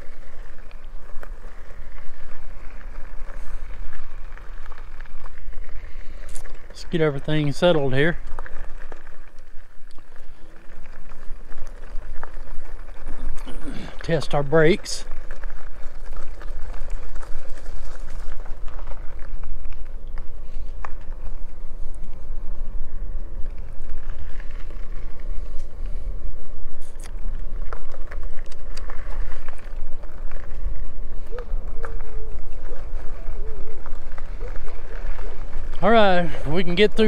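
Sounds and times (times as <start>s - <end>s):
bike tyre road noise on gravel: 0.0s - 37.0s
wind rumbling on microphone: 0.0s - 37.0s.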